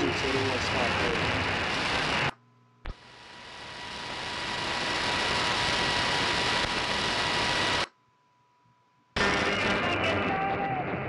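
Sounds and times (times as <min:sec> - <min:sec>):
radio static hiss: 0:00.0 - 0:08.0, 0:09.2 - 0:11.0.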